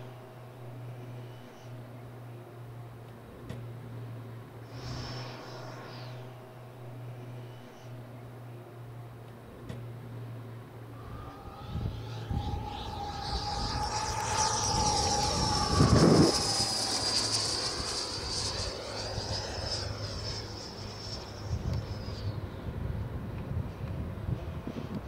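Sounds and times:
model jet fan whine passing: 0:00.0 - 0:25.0.

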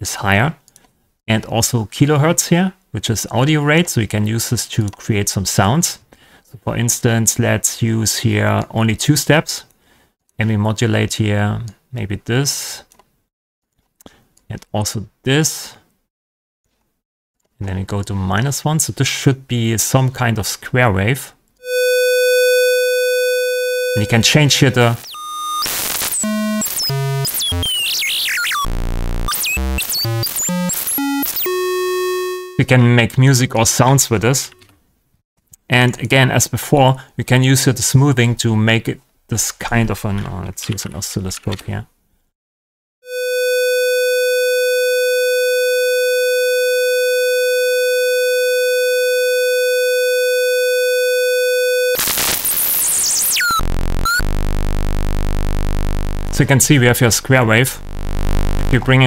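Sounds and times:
buzzy synthesized square-wave tone: 0:21.6 - 0:32.6, 0:43.1 - 0:44.7, 0:51.9 - 0:59.0
harsh noise with sweeping pitches: 0:52.0 - 0:59.0.

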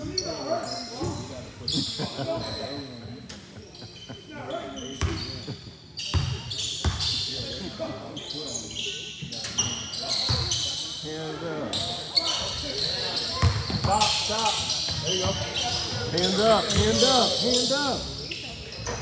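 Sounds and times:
sneakers squeaking on wood: 0:04.7 - 0:07.6, 0:08.2 - 0:10.9, 0:11.8 - 0:19.0.

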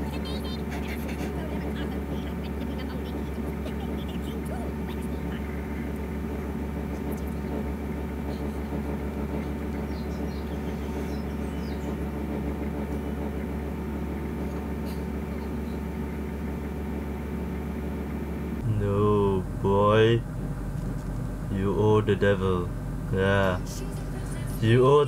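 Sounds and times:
low room hum: 0:00.0 - 0:25.0.

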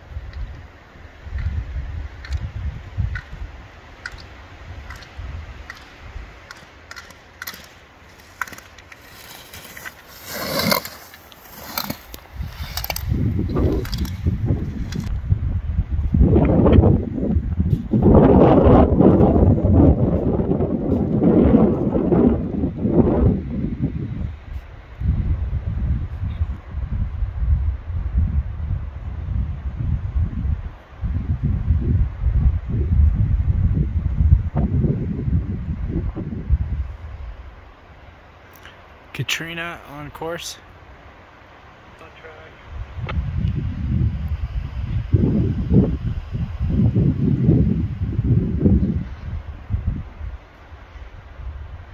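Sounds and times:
wind rumble on microphone: 0:00.0 - 0:10.9, 0:11.5 - 0:37.9, 0:42.5 - 0:51.9
sharp clicks: 0:04.0 - 0:09.0
skis scraping on hard snow: 0:06.5 - 0:15.1.

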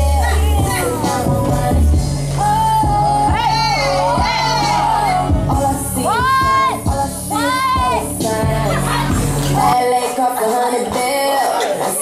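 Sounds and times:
low bass line: 0:00.0 - 0:09.7
hip hop song: 0:00.0 - 0:12.0.

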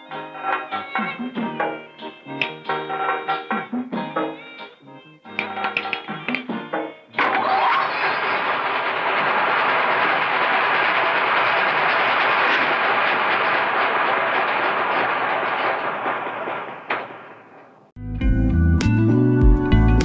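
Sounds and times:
electric grain mill clattering: 0:07.2 - 0:17.8.

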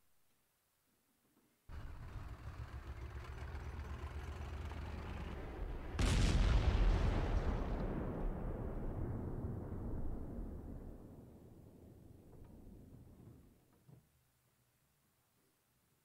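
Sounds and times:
low rumble: 0:01.7 - 0:11.4
loud explosion boom: 0:05.4 - 0:11.5.

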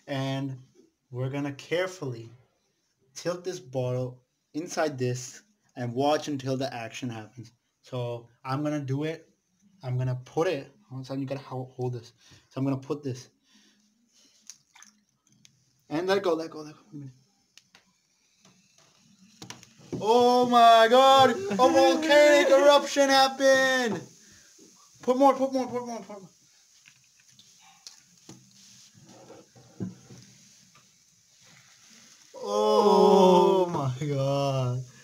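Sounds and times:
liquid sloshing: 0:14.4 - 0:15.5.

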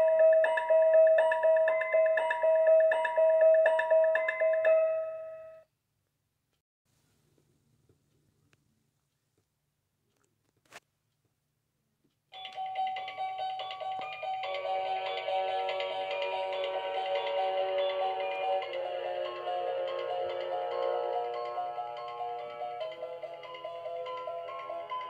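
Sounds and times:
tinny electronic chiming melody: 0:00.0 - 0:05.7, 0:12.4 - 0:25.0.

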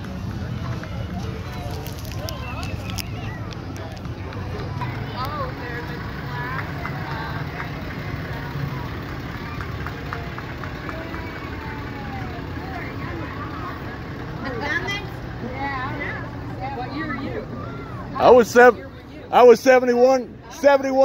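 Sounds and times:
pickup truck engine running: 0:00.0 - 0:20.9
people chattering: 0:00.0 - 0:21.0.

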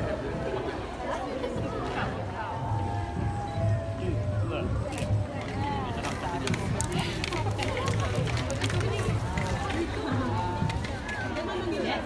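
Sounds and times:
crowd babble: 0:00.0 - 0:12.0
girls talking and chattering: 0:00.0 - 0:12.0.

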